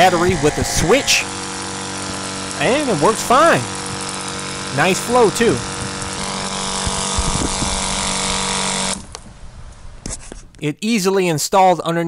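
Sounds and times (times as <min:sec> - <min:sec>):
water pump motor hum: 0:00.0 - 0:10.1.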